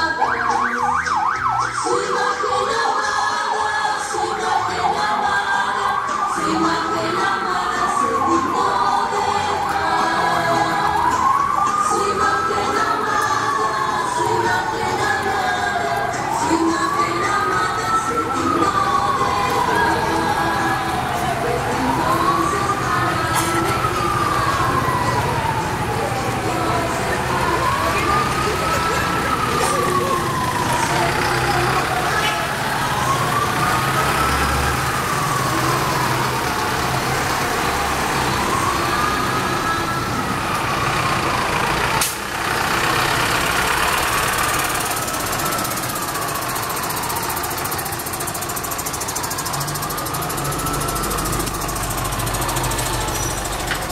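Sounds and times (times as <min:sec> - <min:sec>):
bus engines rumbling: 0:00.0 - 0:53.9
crowd voices: 0:00.0 - 0:53.9
siren wailing: 0:00.0 - 0:53.9.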